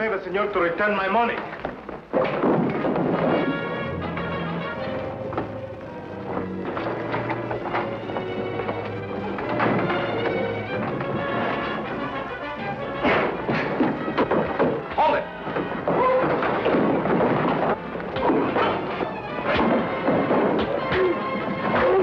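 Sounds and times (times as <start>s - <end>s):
thuds and crashes of blows: 2.0s - 3.8s, 13.0s - 22.0s
orchestral soundtrack music: 3.0s - 22.0s.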